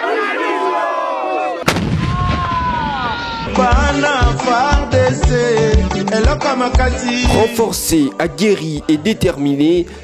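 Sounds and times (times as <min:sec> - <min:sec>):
loud gun blast with rumbling tail: 0:01.7 - 0:02.9
soldiers chanting and shouting: 0:07.2 - 0:09.9.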